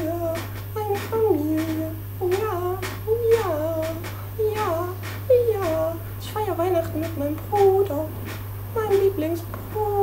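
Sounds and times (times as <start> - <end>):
steady low hum: 0.0 - 10.0
woman humming: 0.0 - 10.0.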